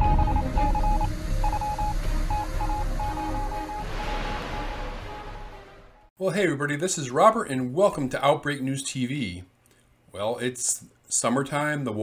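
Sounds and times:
short electronic beeps: 0.0 - 5.6
low bass: 0.0 - 6.0.

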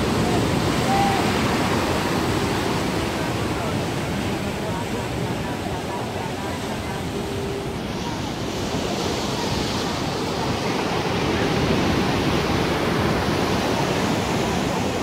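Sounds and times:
surf washing against rocks: 0.0 - 15.0.

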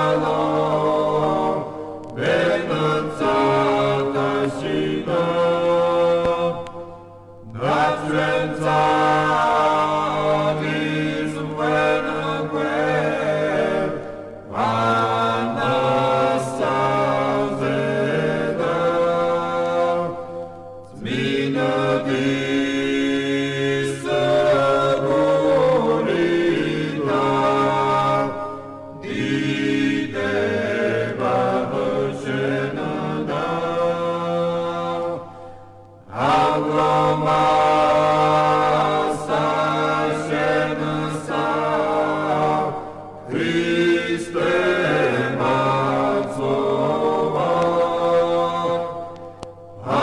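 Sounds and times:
low voices chanting a hymn: 0.0 - 50.0.

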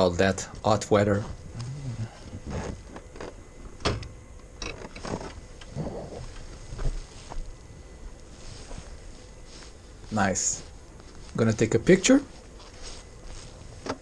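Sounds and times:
riding gear brushing: 6.8 - 14.0.

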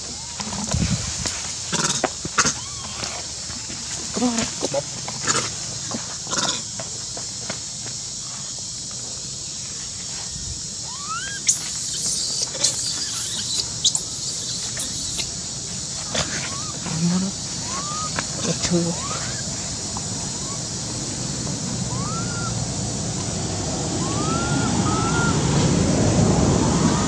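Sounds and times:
sharp high animal calls: 1.8 - 3.3, 10.8 - 15.4, 16.0 - 20.8, 21.8 - 22.8, 23.9 - 25.5
high-pitched insect buzz: 9.5 - 24.3
animal squeaks and chirps: 10.9 - 15.3, 16.1 - 18.2, 18.8 - 19.4.

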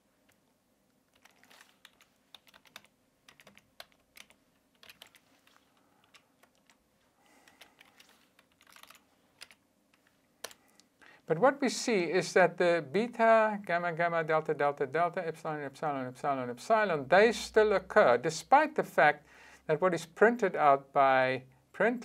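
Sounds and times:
typing on a computer keyboard: 1.1 - 6.8, 7.4 - 10.7.

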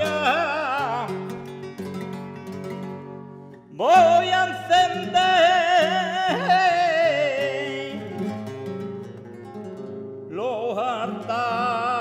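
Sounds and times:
man singing flamenco: 0.0 - 2.8, 3.7 - 9.2, 10.2 - 12.0
flamenco guitar: 0.0 - 12.0.

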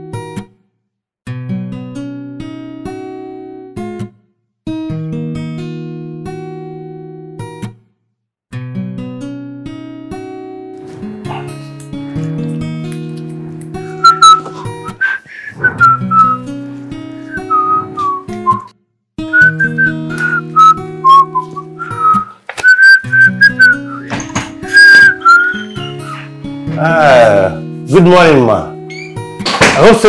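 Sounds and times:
acoustic guitar: 0.0 - 0.6, 1.3 - 7.9, 8.5 - 30.0
person whistling a tune: 14.0 - 16.5, 17.3 - 18.7, 19.3 - 26.2.

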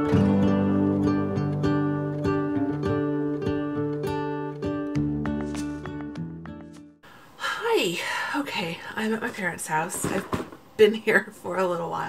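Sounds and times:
woman talking: 7.4 - 12.0.

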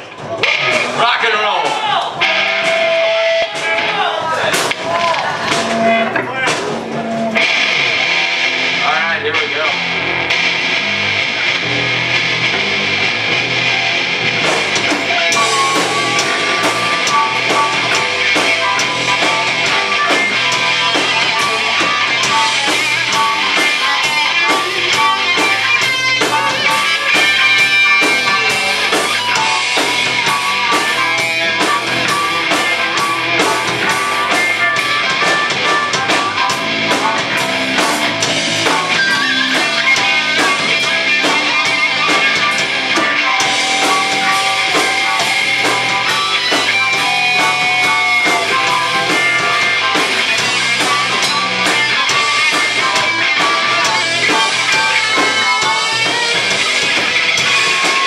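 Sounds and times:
drum kit: 0.0 - 58.0
electric guitar: 0.0 - 58.0
harmonica wailing: 5.4 - 7.8, 15.0 - 58.0.

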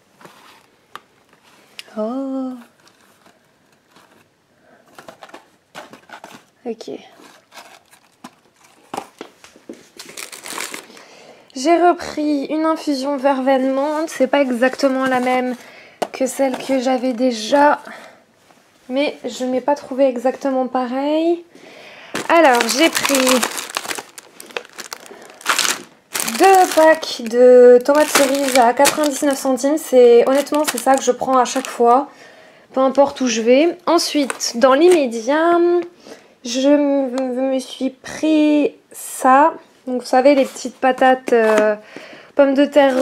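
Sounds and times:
packaging knocks and rustles: 4.9 - 6.5, 7.2 - 11.0, 22.1 - 31.8.

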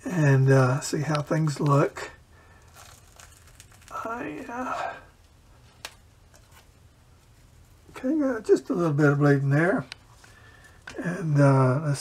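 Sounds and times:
bandage peeling off skin: 2.5 - 4.6.

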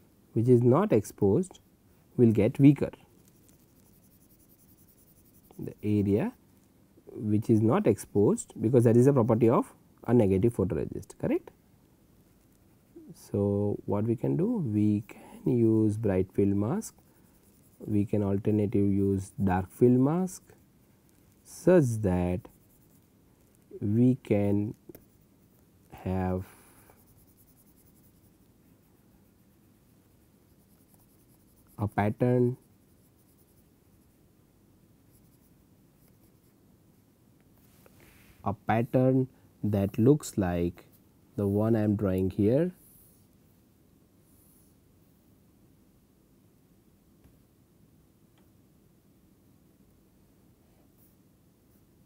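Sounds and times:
stylus scratching on drawing tablet: 2.4 - 6.4, 14.4 - 34.2, 35.0 - 36.6.

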